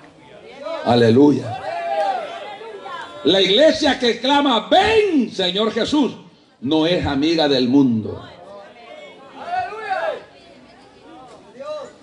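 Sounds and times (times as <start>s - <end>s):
person preaching: 3.2s - 8.2s.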